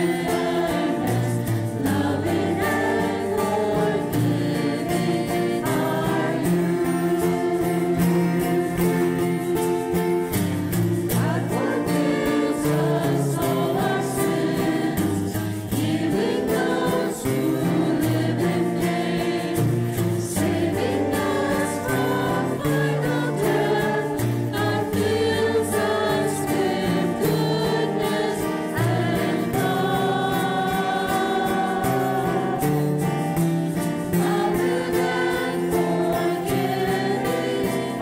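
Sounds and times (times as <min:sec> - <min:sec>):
choir singing a hymn: 0:00.0 - 0:38.0.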